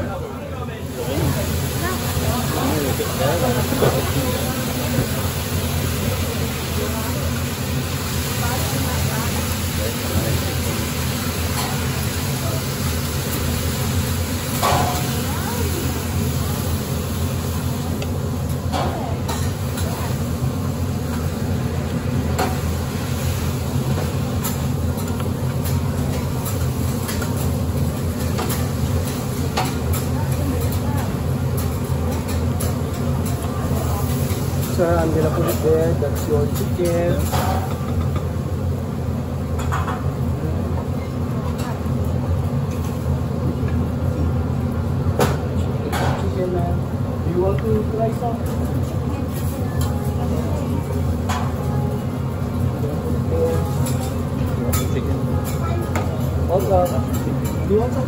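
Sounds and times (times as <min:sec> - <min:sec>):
food sizzling on hotplate: 0:00.8 - 0:58.0.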